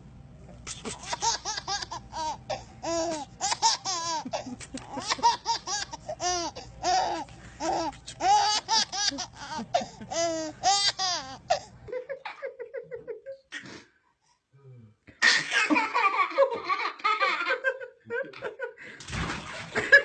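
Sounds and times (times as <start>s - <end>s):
baby laughing: 0.9s - 13.4s.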